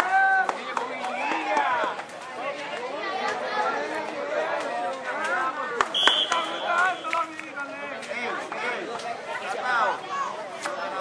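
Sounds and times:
spectators chattering and calling: 0:00.0 - 0:11.0
high whistle blast: 0:06.0 - 0:07.2.

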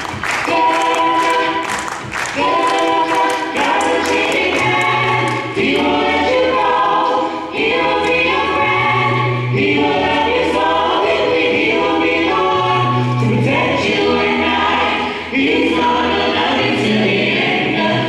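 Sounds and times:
group singing gospel in harmony: 0:00.0 - 0:18.0.

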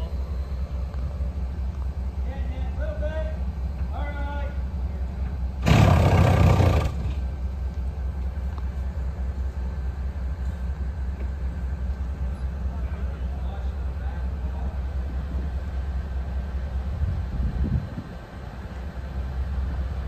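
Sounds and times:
diesel engine rumbling: 0:00.0 - 0:20.0
loud rushing burst: 0:05.6 - 0:07.2.

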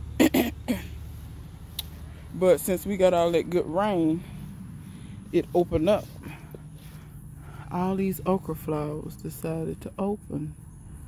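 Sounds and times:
person clearing throat: 0:00.2 - 0:01.0.

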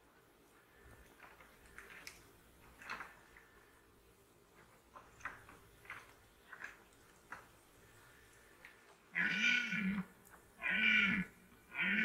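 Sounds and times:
deer stag roaring: 0:09.1 - 0:12.0.

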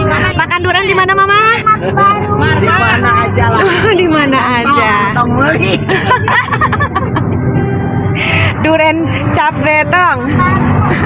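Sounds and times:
car engine and road hum: 0:00.0 - 0:11.0.

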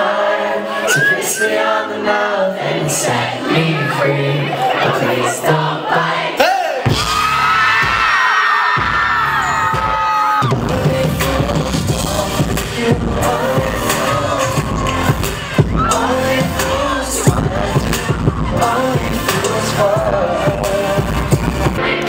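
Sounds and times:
live pop band: 0:00.8 - 0:05.8, 0:06.4 - 0:22.0.

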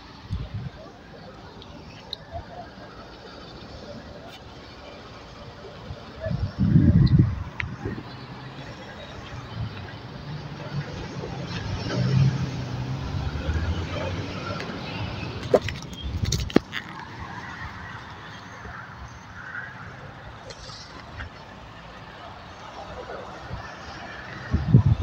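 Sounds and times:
vehicle engine passing by: 0:07.8 - 0:15.5.

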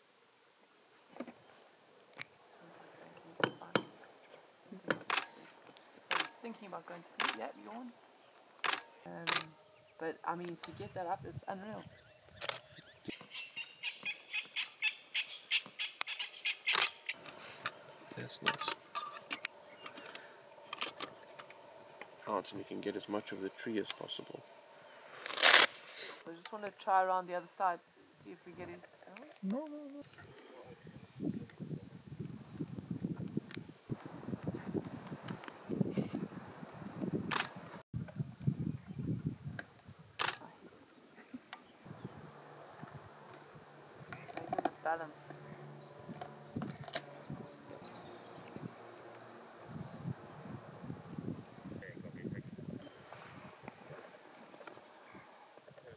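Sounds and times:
bird chirping: 0:06.3 - 0:25.3, 0:25.9 - 0:31.8, 0:39.9 - 0:50.4.

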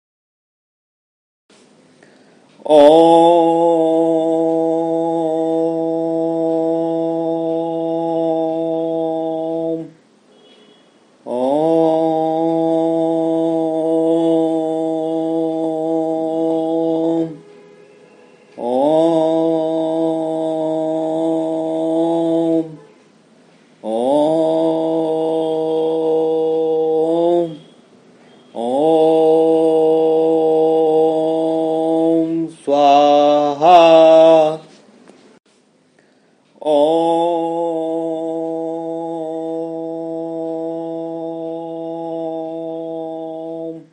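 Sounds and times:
deep voice chanting om: 0:02.6 - 0:10.0, 0:11.2 - 0:17.4, 0:18.5 - 0:22.8, 0:23.8 - 0:27.6, 0:28.5 - 0:34.7, 0:36.6 - 0:43.9.

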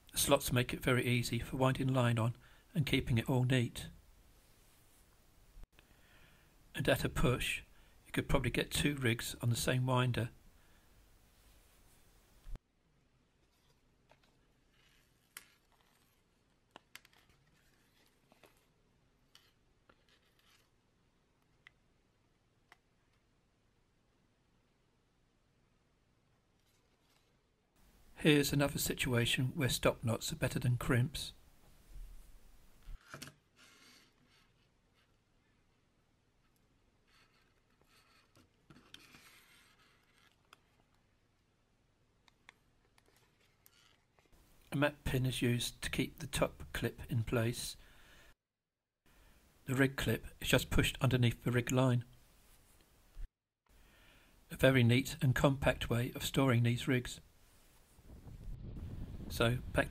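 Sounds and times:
soft handling rustles: 0:13.4 - 0:20.8.

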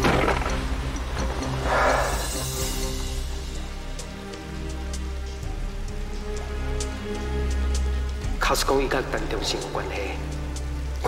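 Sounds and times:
rain on car roof and windows: 0:00.0 - 0:01.6
background music of low notes: 0:00.0 - 0:11.0.

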